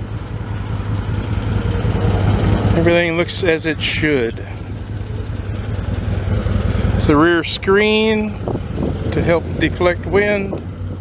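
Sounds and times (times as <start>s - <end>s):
engine idling with low rumble: 0.0s - 11.0s.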